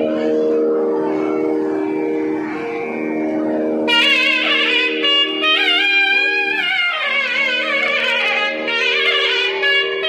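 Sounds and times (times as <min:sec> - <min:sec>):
drone of held wind tones: 0:00.0 - 0:10.0.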